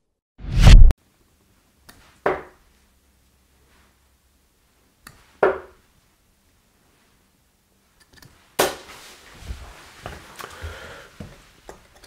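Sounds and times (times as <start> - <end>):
darts striking dartboard: 2.2 - 2.6.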